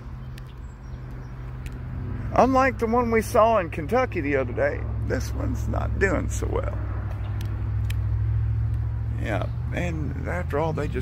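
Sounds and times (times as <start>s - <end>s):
faint clicks: 0.3s - 1.9s.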